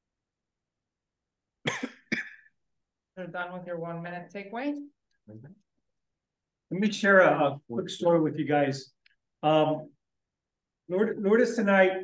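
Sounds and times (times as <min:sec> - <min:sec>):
person coughing: 0:01.6 - 0:02.5.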